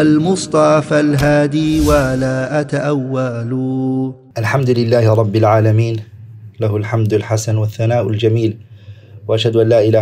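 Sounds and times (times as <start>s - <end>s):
man chanting: 0.0s - 8.6s.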